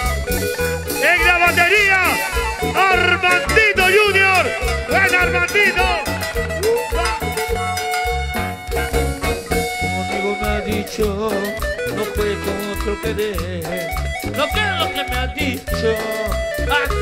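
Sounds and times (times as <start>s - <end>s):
cumbia band playing: 0.0s - 17.0s.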